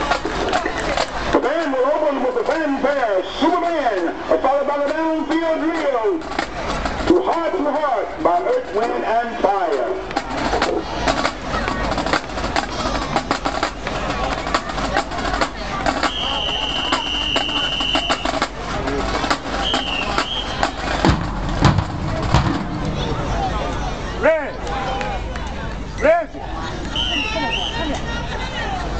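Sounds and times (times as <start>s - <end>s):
stadium crowd chatter: 0.0s - 28.9s
heavy thumps: 10.0s - 23.6s
whistle blasts: 16.0s - 18.4s, 19.6s - 20.8s, 26.9s - 27.9s.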